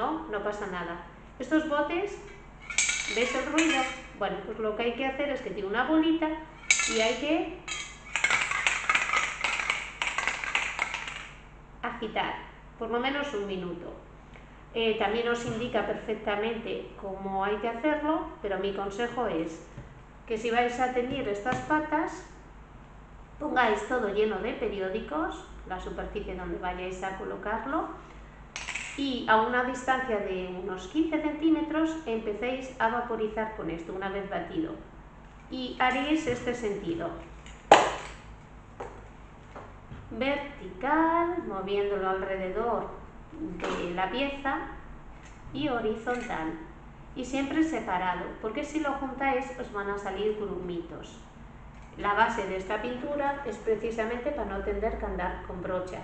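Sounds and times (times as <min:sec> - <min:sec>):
spray can ball rattling: 0:08.0 - 0:11.3.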